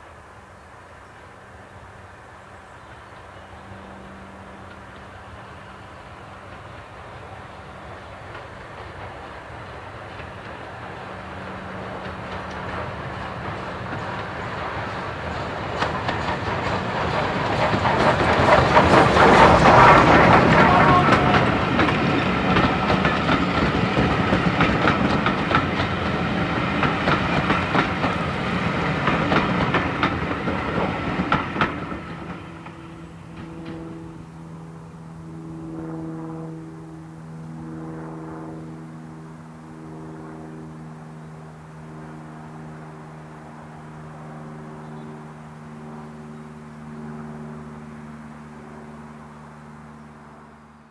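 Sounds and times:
steam locomotive passing: 0.0s - 50.9s
coaches clicking over rail joints: 4.5s - 34.2s.

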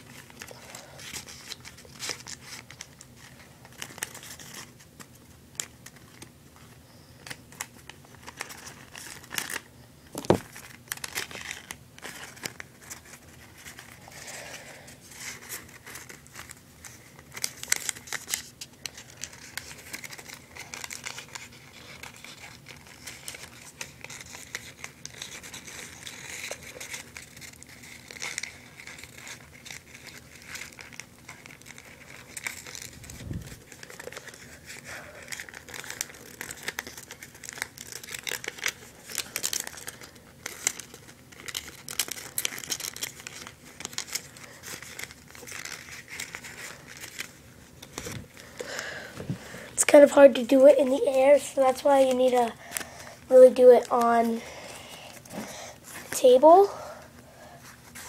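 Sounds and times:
paper rustling and crinkling: 0.0s - 58.0s.

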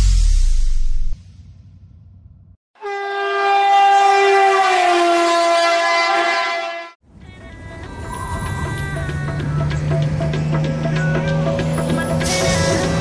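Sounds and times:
horn-like blown note: 2.8s - 7.0s
music: 7.1s - 13.0s.

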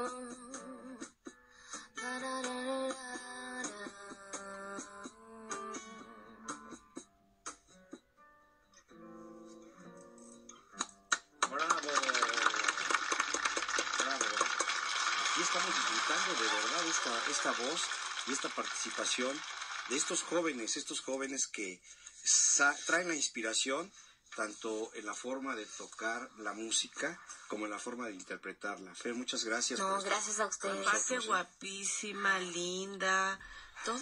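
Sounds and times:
woman singing: 0.0s - 1.1s, 1.8s - 6.6s, 29.8s - 34.0s
acoustic guitar: 0.0s - 12.0s
clapping and applause: 10.8s - 21.2s.

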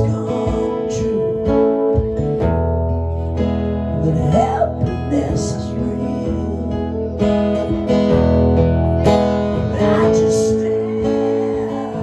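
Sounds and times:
acoustic guitars strummed: 0.0s - 12.0s.

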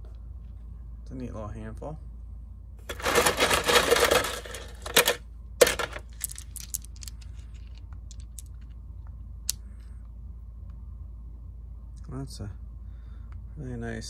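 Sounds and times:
small stones rattling: 2.9s - 8.7s
stones clicking in palm: 5.6s - 8.7s.

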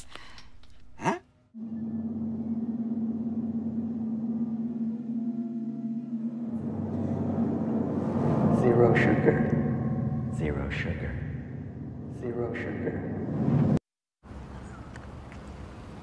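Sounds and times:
low eerie drone: 1.6s - 13.8s.

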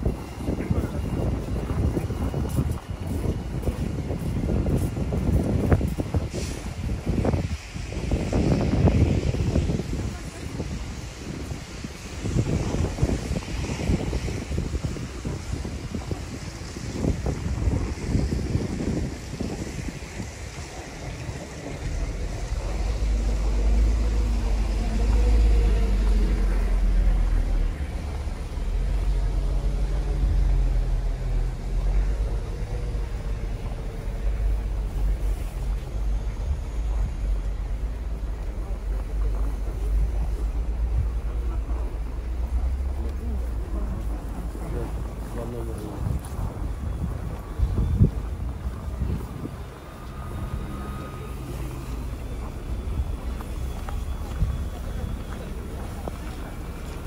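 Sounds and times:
traffic on slushy road: 0.0s - 57.0s
wind buffeting microphone: 0.0s - 57.0s.

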